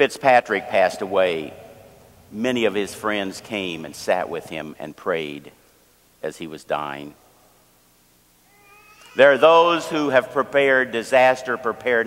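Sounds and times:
man speaking: 0.0s - 1.6s, 2.3s - 5.6s, 6.2s - 7.2s, 9.2s - 12.0s
child whining: 8.5s - 9.4s.

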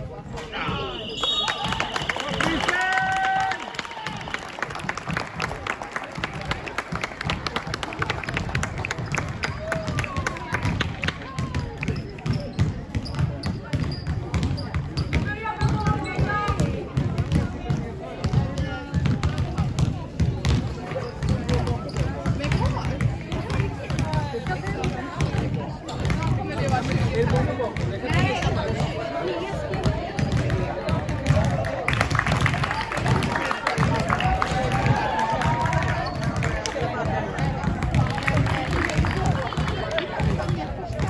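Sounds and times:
players chatting and calling: 0.0s - 41.0s
basketballs bouncing on floor: 6.2s - 41.0s.

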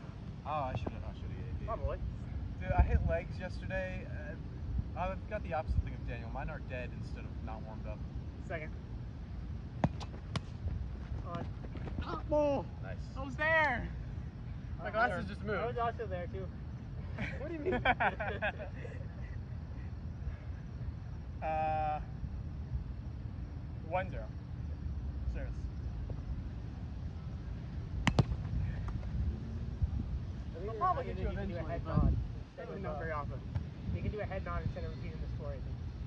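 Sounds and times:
steady low rumble: 0.0s - 12.0s, 22.0s - 36.0s
ball smack: 9.8s - 10.6s, 28.0s - 29.0s.

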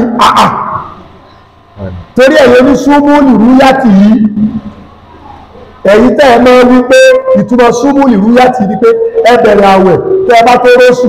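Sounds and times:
man speaking: 1.8s - 3.0s.

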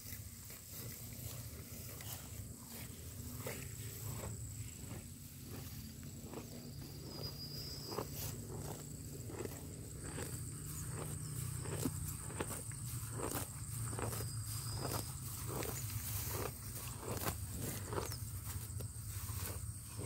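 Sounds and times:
cow chewing grass: 0.0s - 20.0s.

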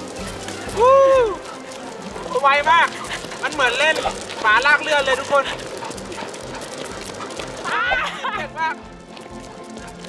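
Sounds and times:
skateboard wheels rolling on asphalt: 0.0s - 10.0s
dog yelping: 5.3s - 8.3s.

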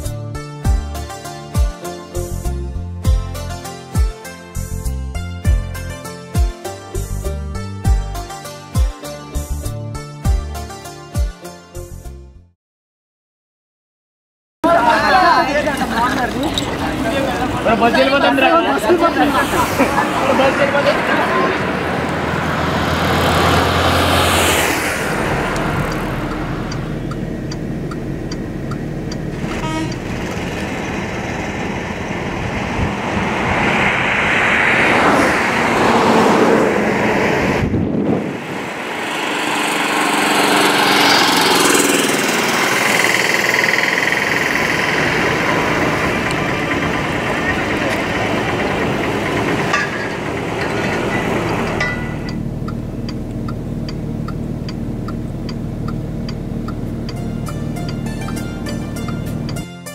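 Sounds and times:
indistinct voices: 14.6s - 22.6s
passing vehicles: 14.6s - 59.7s
car horn toots: 29.5s - 30.2s.

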